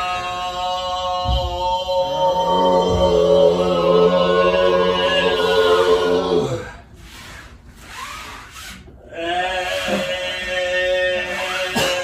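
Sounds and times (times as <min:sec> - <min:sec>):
overtone singing: 0:00.0 - 0:06.8.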